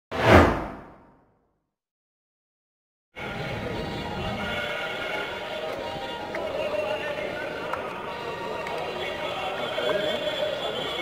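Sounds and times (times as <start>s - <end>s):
whoosh sound effect: 0.1s - 1.1s.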